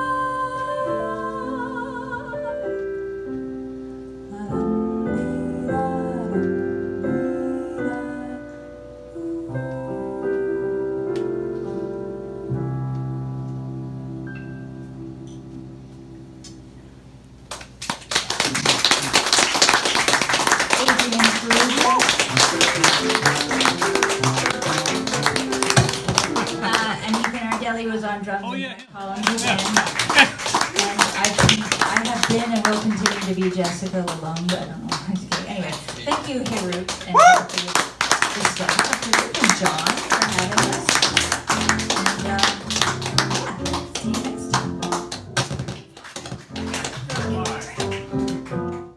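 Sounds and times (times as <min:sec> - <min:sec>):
piano chord: 0:00.0 - 0:17.4, 0:19.2 - 0:28.1, 0:37.6 - 0:48.9
audience applause: 0:17.5 - 0:27.8, 0:28.6 - 0:48.9.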